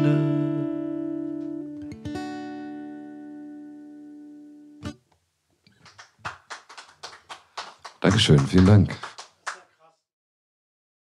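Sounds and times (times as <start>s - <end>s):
sparse applause: 5.8s - 9.9s.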